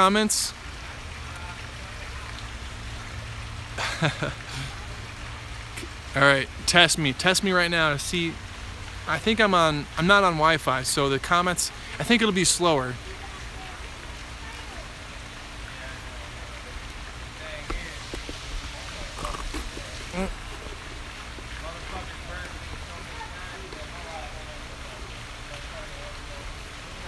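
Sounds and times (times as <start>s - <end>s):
outdoor background hiss: 0.0s - 27.0s.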